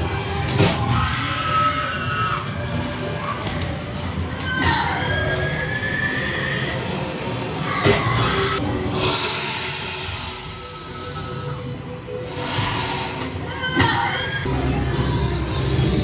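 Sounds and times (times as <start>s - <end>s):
eerie music: 0.0s - 16.0s
burst of hissing noise: 8.9s - 11.5s.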